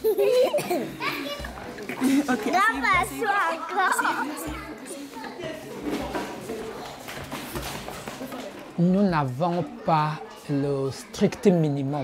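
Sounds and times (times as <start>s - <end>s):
children chattering excitedly: 0.0s - 12.0s.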